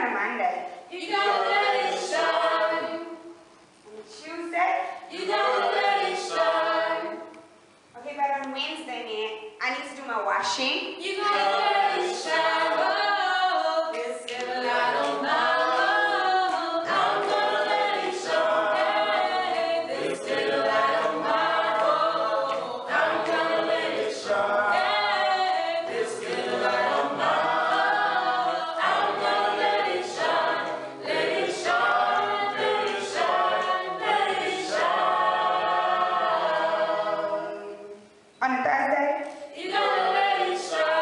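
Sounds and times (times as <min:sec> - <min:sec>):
group singing a cappella: 0:00.7 - 0:03.6, 0:04.7 - 0:07.7, 0:10.9 - 0:38.3, 0:38.9 - 0:41.0.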